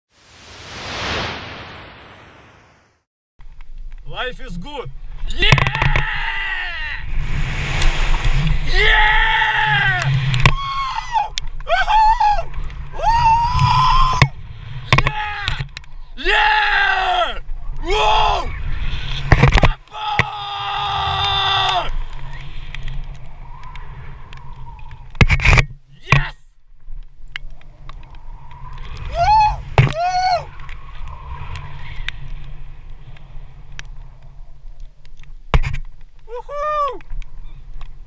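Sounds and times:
wind rushing over microphone: 0:05.0 - 0:25.8, 0:27.2 - 0:34.9
man yelling excitedly: 0:08.7 - 0:10.0, 0:10.6 - 0:12.5, 0:16.2 - 0:18.5, 0:26.0 - 0:26.5
man yelling with excitement: 0:08.7 - 0:10.0, 0:10.6 - 0:14.2, 0:36.3 - 0:37.0.

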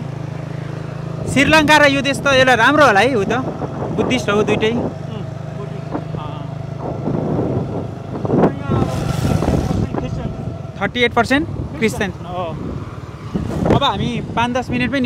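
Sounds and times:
vehicle engine droning: 0:00.0 - 0:15.0.

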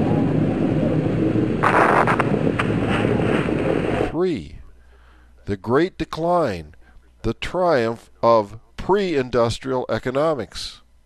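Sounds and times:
rocket launch rumbling roar: 0:00.0 - 0:04.2
crackles: 0:01.6 - 0:04.1.

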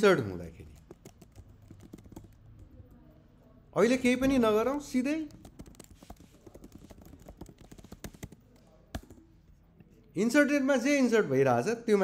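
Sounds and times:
keyboard typing: 0:00.6 - 0:03.2, 0:03.8 - 0:09.3.

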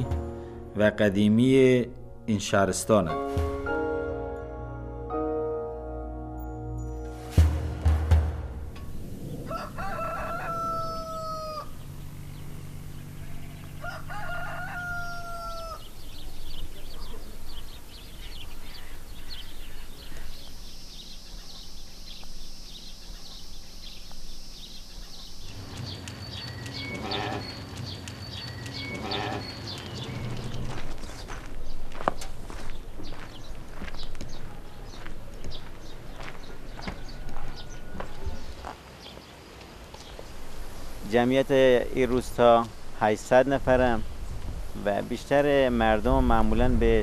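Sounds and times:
rooster crowing: 0:09.3 - 0:12.0, 0:13.1 - 0:16.2, 0:36.6 - 0:38.8
footsteps on dirt lane: 0:25.5 - 0:40.4.

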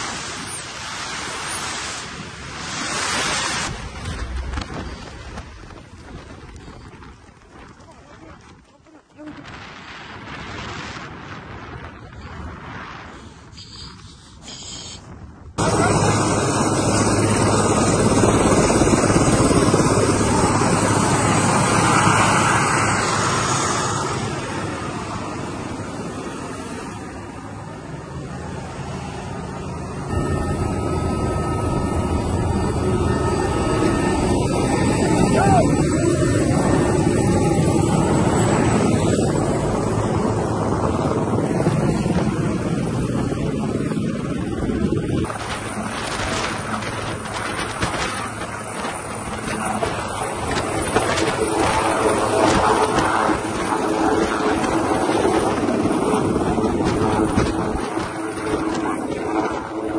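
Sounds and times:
helicopter turbine and rotor: 0:00.0 - 0:59.9
aircraft cabin noise: 0:13.2 - 0:59.9.

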